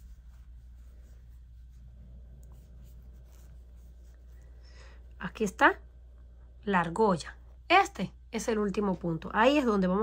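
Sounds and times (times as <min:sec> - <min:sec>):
crochet hook rustling yarn: 0:00.0 - 0:04.6
steady low hum: 0:00.0 - 0:10.0.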